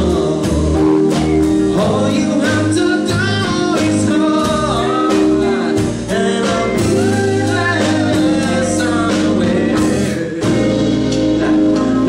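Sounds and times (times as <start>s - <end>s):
live band playing pop-gospel song: 0.0s - 12.0s.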